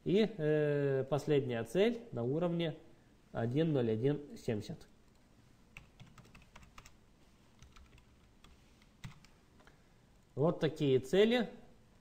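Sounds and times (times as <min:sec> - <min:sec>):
keyboard typing: 0:05.7 - 0:07.0, 0:07.6 - 0:09.4.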